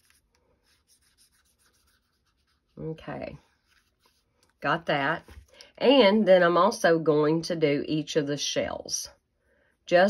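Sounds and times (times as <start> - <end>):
brush pen strokes on cardstock: 0.0 - 4.3.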